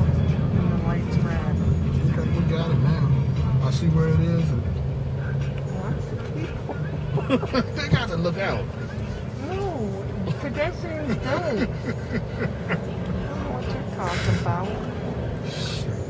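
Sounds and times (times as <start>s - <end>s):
car engine rumble and road noise: 0.0s - 16.0s
faint voices: 0.0s - 16.0s.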